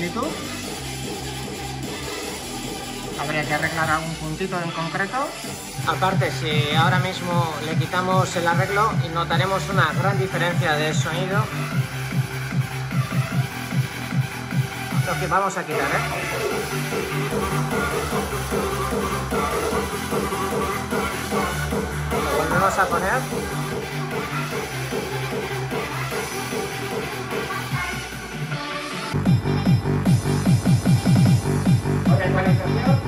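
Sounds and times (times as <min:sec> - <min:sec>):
electronic dance music: 0:00.0 - 0:33.0
song through loudspeaker: 0:00.0 - 0:33.0.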